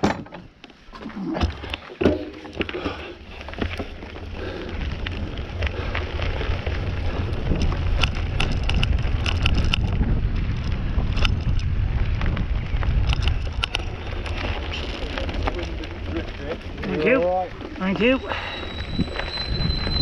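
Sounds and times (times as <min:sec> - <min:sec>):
bike clicking and rattling: 0:00.0 - 0:20.0
bike tyres crunching on gravel: 0:00.8 - 0:20.0
wind buffeting microphone: 0:02.5 - 0:20.0.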